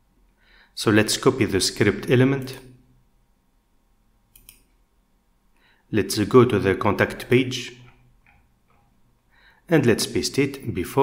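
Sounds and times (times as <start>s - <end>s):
computer mouse clicking: 4.3s - 4.7s.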